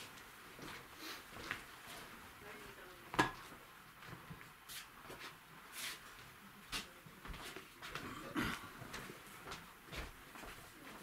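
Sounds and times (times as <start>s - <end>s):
faint scuffing of person moving: 0.0s - 2.2s, 3.4s - 8.1s, 8.8s - 11.0s.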